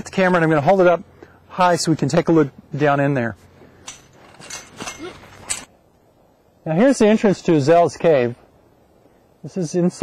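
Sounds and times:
chain-link fence rattling: 0:03.8 - 0:05.7.

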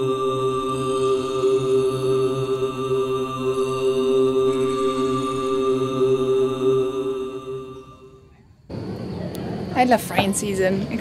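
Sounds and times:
chant-like drone music: 0:00.0 - 0:09.6
outdoor ambience: 0:00.0 - 0:11.0.

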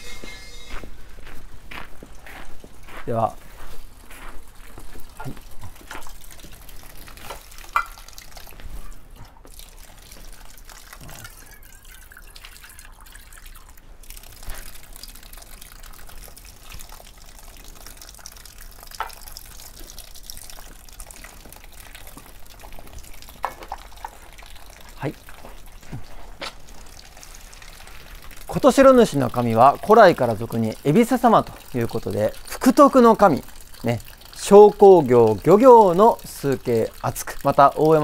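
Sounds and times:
water trickling into stone basin: 0:00.0 - 0:38.0.

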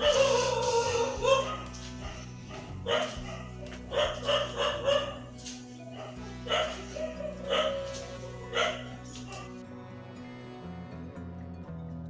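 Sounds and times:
dog yipping: 0:00.0 - 0:09.6
background music: 0:00.0 - 0:12.0.

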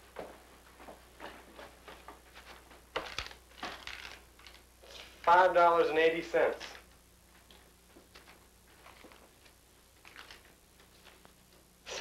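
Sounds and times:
rustling and handling noises: 0:00.2 - 0:05.4, 0:06.6 - 0:11.7.

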